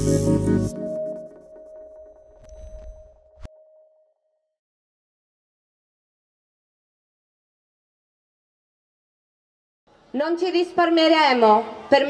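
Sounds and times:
electronic jingle tone ringing: 0.7 - 4.1.

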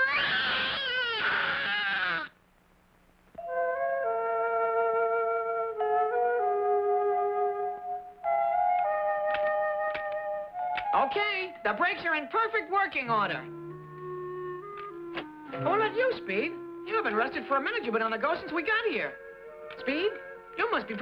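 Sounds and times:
cartoon boy wailing: 0.0 - 2.3
soft woodwind background music: 3.4 - 21.0.

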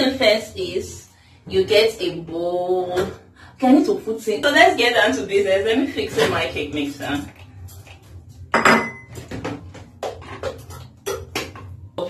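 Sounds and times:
kitchenware clinking and knocking: 8.5 - 11.9.

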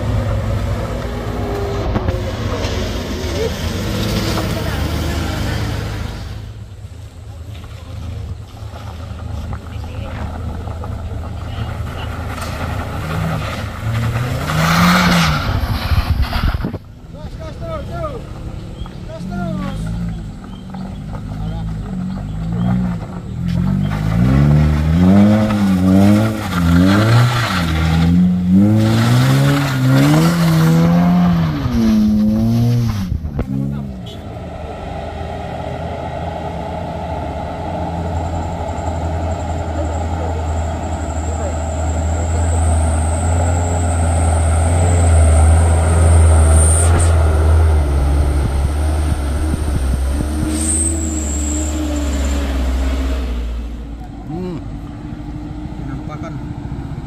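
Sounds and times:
car engine revving: 0.0 - 57.0
diesel truck engine labouring: 0.0 - 57.0.

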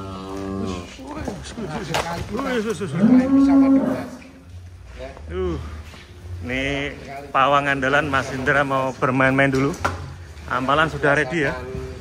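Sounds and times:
cattle mooing: 2.8 - 4.4.

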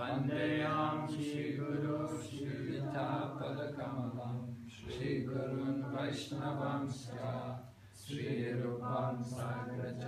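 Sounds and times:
person chanting prayers: 0.0 - 10.0.

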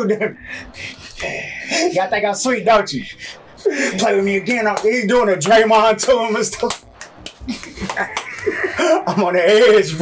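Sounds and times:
man laughing wheezily: 0.0 - 1.9, 3.2 - 4.0, 7.5 - 9.2
man speaking: 0.0 - 6.9, 8.8 - 10.0.

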